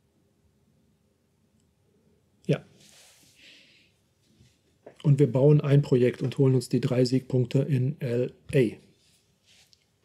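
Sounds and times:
soft breathy hiss: 0:02.5 - 0:04.7, 0:08.9 - 0:09.9.

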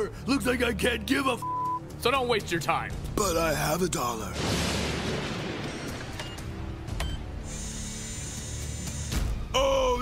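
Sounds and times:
high mechanical whir: 0:07.3 - 0:09.5.

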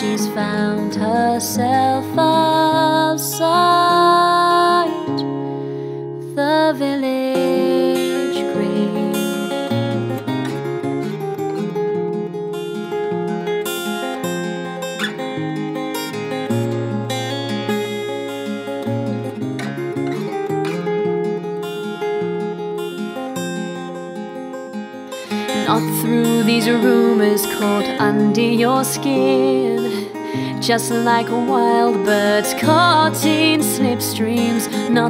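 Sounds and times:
acoustic guitar playing: 0:00.0 - 0:35.0.

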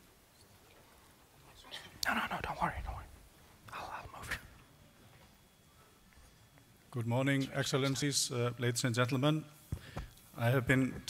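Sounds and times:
person speaking quietly: 0:01.5 - 0:04.6.

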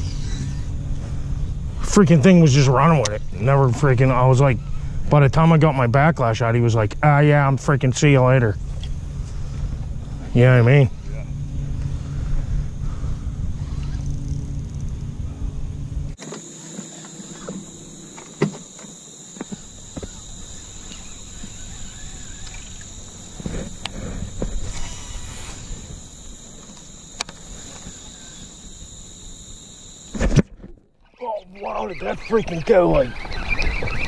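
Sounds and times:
steady low hum: 0:00.0 - 0:30.4
high-pitched drone: 0:16.2 - 0:30.3.

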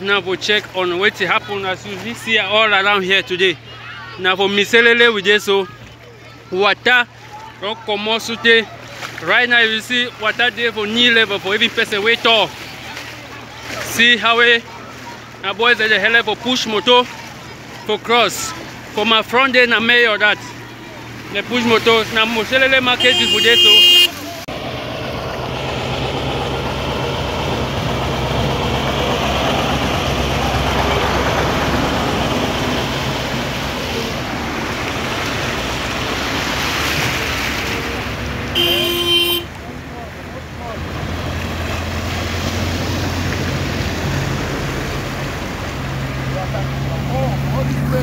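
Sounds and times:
vehicle engines running low: 0:00.0 - 0:48.0
water sloshing: 0:00.0 - 0:48.0
short car horn toot: 0:23.0 - 0:24.2, 0:38.5 - 0:39.5.

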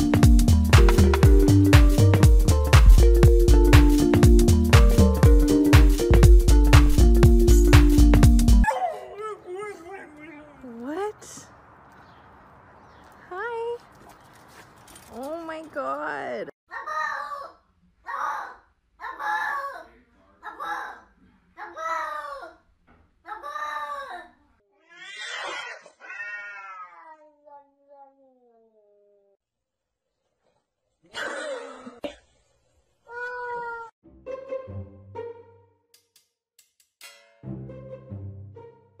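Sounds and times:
music: 0:00.0 - 0:08.6, 0:34.0 - 0:39.0
cat meowing loudly: 0:24.8 - 0:27.2.

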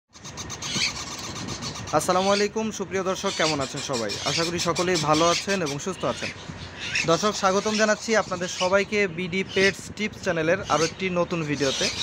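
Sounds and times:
traffic-like rumble: 0:00.1 - 0:12.0.

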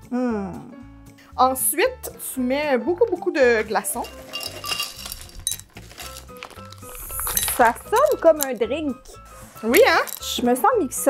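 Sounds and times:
light background music: 0:00.0 - 0:11.0
ice cubes clinking in glasses: 0:03.9 - 0:08.6, 0:09.7 - 0:10.4.

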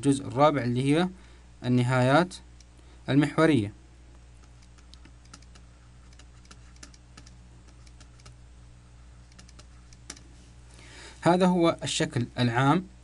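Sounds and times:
low electrical hum: 0:00.0 - 0:13.0.

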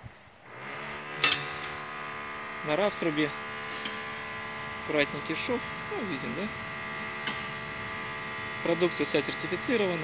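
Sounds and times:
steady electrical hum: 0:00.0 - 0:10.0
metal pipes clinking: 0:01.2 - 0:01.9, 0:03.6 - 0:04.5, 0:07.1 - 0:07.9.

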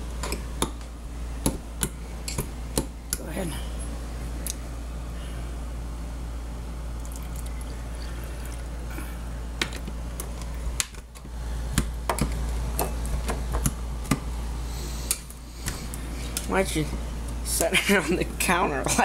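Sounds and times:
steady low hum: 0:00.0 - 0:19.0
thick mixture pouring into glass: 0:07.0 - 0:08.8.

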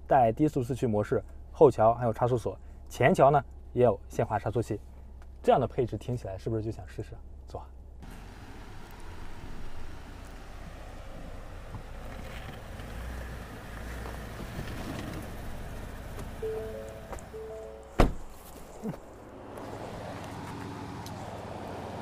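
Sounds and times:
pickup truck engine rumble: 0:08.0 - 0:22.0
background music: 0:16.4 - 0:18.0.

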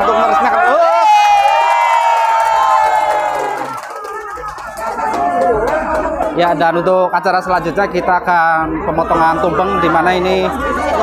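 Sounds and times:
crowd cheering: 0:00.0 - 0:07.4, 0:09.0 - 0:11.0.

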